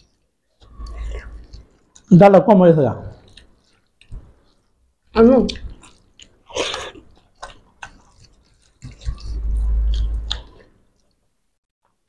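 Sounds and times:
chewing: 0:00.0 - 0:02.1, 0:03.1 - 0:11.3.

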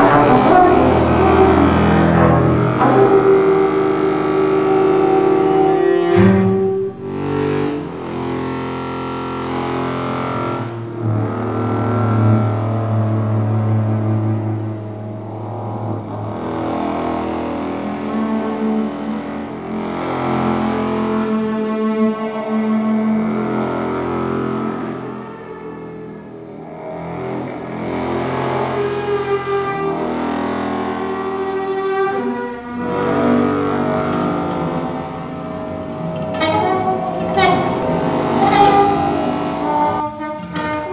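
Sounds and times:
low held note: 0:00.0 - 0:08.0, 0:33.3 - 0:40.7
acoustic ensemble improvised music: 0:00.0 - 0:40.9.

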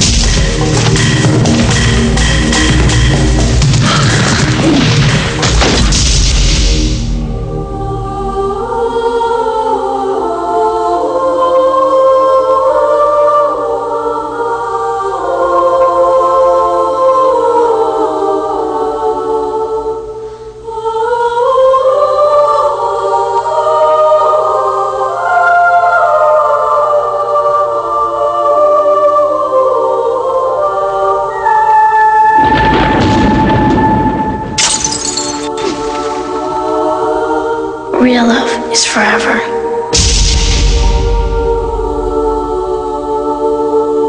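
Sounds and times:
choir singing: 0:07.0 - 0:44.0.

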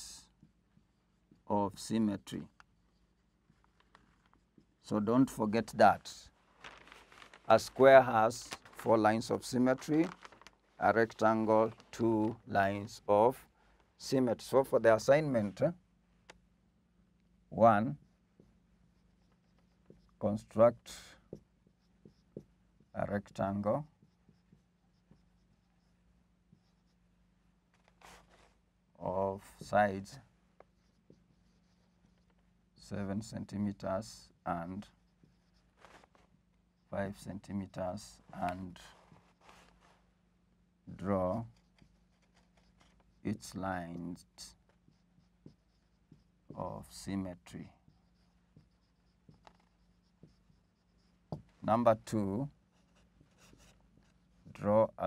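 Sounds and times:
marker scratching on whiteboard: 0:00.3 - 0:06.2, 0:17.5 - 0:55.0
marker pen ticking on board: 0:21.3 - 0:22.9, 0:43.9 - 0:47.0, 0:47.8 - 0:51.5.

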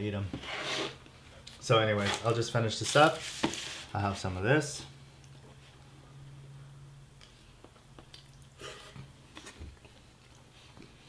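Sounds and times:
steady low hum: 0:00.0 - 0:11.0
chewing and mouth sounds: 0:07.2 - 0:08.6, 0:09.3 - 0:11.0.

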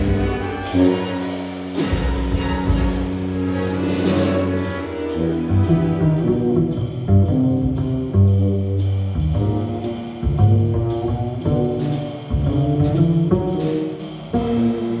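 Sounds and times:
double bass low notes: 0:00.0 - 0:15.0
drum kit beat: 0:00.0 - 0:15.0.

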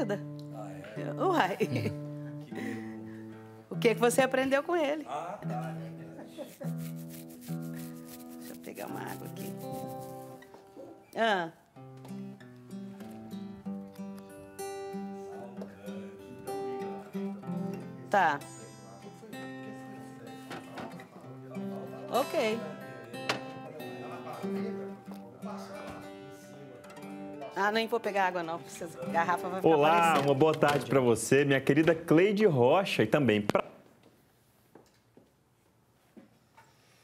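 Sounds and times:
acoustic guitar plucked: 0:00.0 - 0:04.4, 0:05.4 - 0:31.1.

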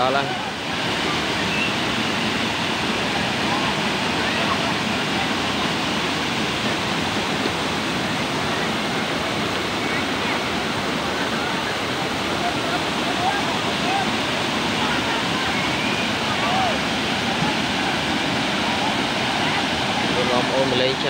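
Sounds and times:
faint voices: 0:00.0 - 0:21.0
river water rushing over rocks: 0:00.0 - 0:21.0.

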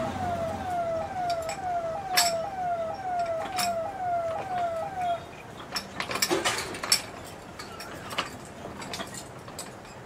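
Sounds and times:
winch whining: 0:00.0 - 0:06.2.

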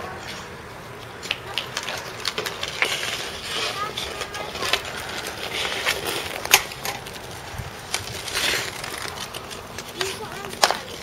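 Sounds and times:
skate blades scraping ice: 0:00.0 - 0:11.0
hockey sticks clacking on ice: 0:00.2 - 0:11.0.

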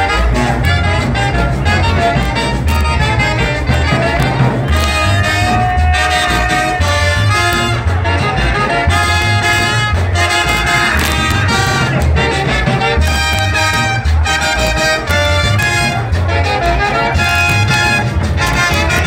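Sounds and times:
brass dance band music: 0:00.0 - 0:19.0.

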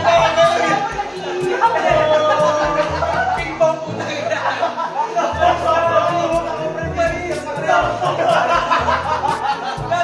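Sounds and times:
music with bass and beat: 0:00.0 - 0:03.7, 0:05.4 - 0:10.0
people talking and calling out: 0:00.0 - 0:10.0.

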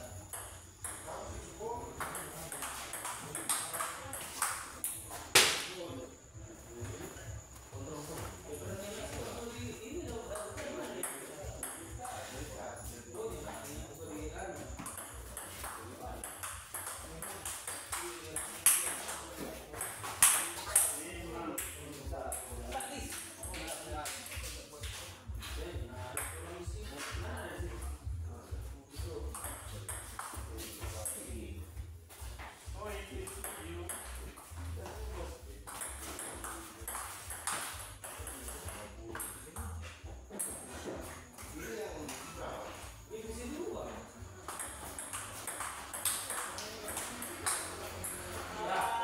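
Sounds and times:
people talking: 0:00.0 - 0:49.0
table tennis ball clicking: 0:44.5 - 0:48.2.

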